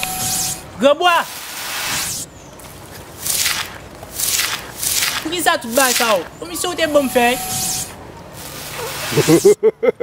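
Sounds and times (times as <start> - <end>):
hissing sound effects: 0.0 - 2.3, 7.5 - 9.6.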